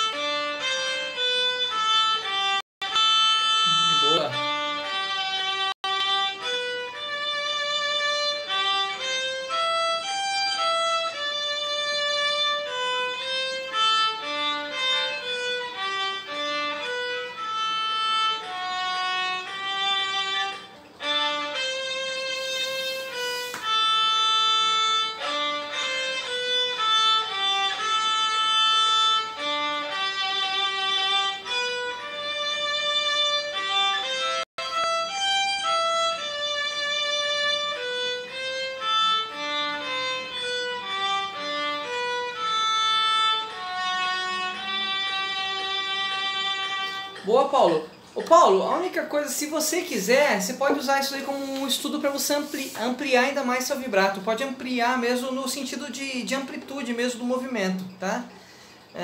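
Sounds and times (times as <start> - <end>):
solo violin slow melody: 0.0 - 47.7.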